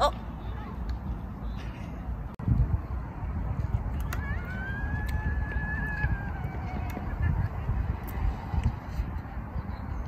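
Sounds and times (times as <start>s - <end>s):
wind rumble on microphone: 0.2s - 10.0s.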